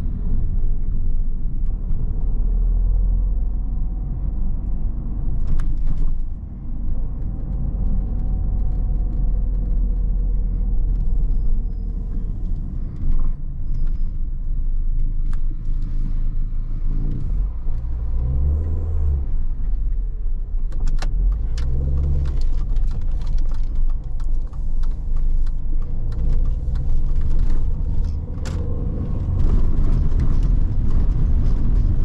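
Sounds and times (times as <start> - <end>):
car engine and tyres rumbling: 0.0 - 32.0
sharp clicks and rattles: 19.6 - 32.0.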